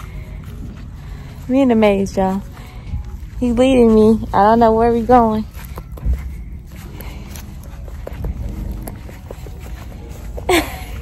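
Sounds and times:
footsteps: 0.0s - 11.0s
low rumble of wind or handling: 0.0s - 11.0s.

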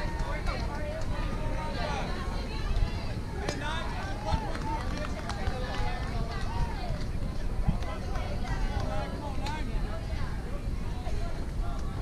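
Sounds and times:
low rumble on microphone: 0.0s - 12.0s.

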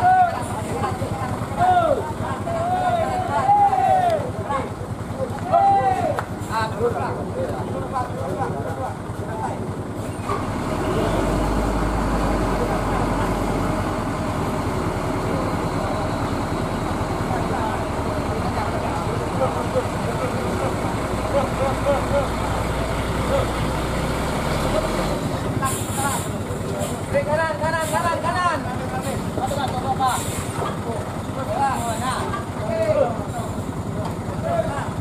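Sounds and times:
crowd chatter: 0.0s - 35.0s
truck engine rumbling: 0.0s - 35.0s.

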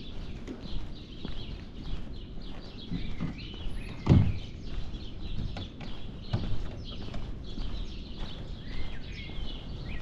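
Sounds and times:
footsteps on paving: 0.0s - 10.0s
songbirds chirping: 0.0s - 10.0s.

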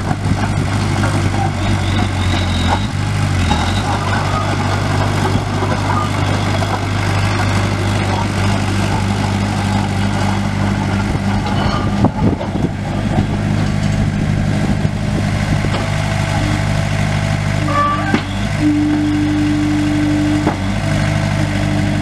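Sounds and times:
diesel engine running: 0.0s - 22.0s.

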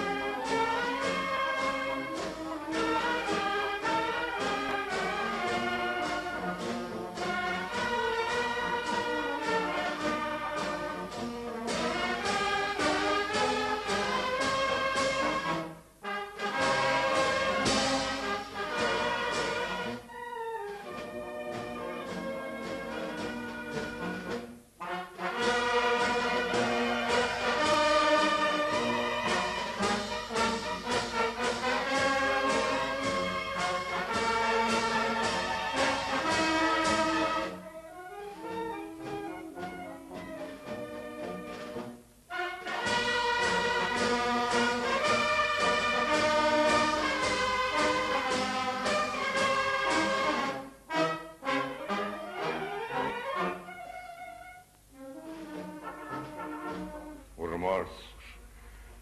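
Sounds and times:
brass band playing: 0.0s - 58.6s.

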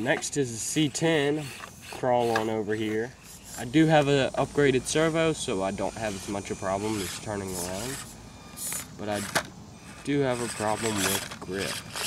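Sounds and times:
small electric motor whirring: 0.0s - 12.0s.

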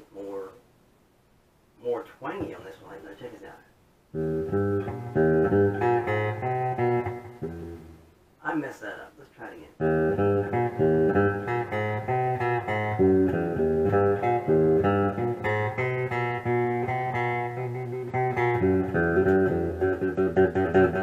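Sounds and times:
electric guitar playing: 4.1s - 8.1s, 9.8s - 21.0s.

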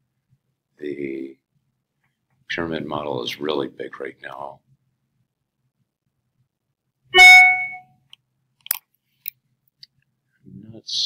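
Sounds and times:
short loud tone: 7.2s - 7.9s.

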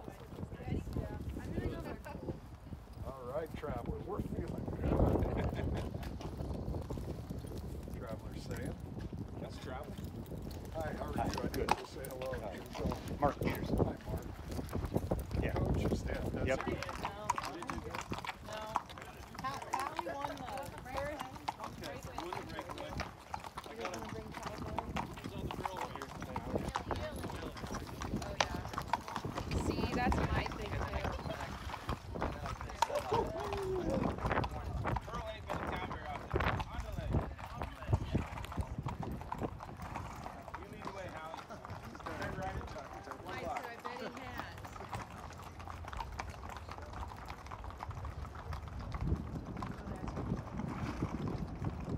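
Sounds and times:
horse hooves clopping: 0.0s - 51.9s
people's voices: 15.3s - 38.9s, 40.2s - 45.4s.

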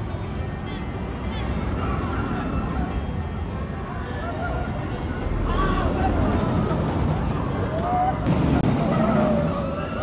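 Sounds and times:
roller coaster train rumbling: 1.1s - 10.0s
people yelling: 4.0s - 10.0s.

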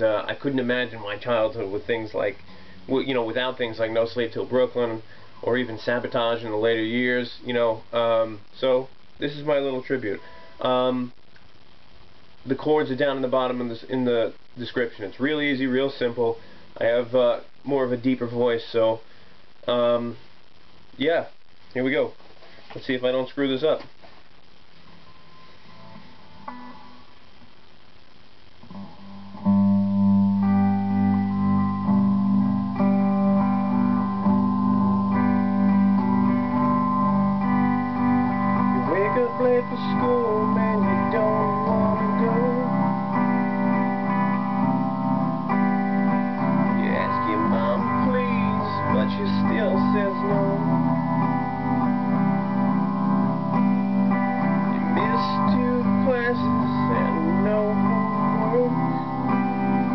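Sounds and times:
electric guitar chords: 0.0s - 21.7s, 24.5s - 59.9s
man singing: 38.7s - 43.1s, 46.7s - 50.8s, 54.8s - 59.3s.

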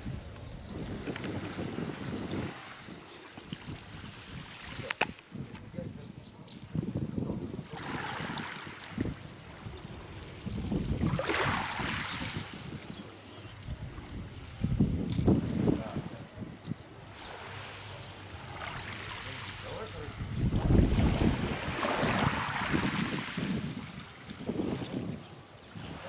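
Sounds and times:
wind buffeting microphone: 0.0s - 17.4s, 18.3s - 26.0s.

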